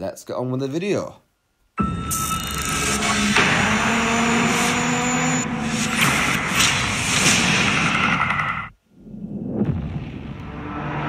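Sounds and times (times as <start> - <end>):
trailer music: 1.8 - 11.0
loud sound effects: 2.5 - 11.0.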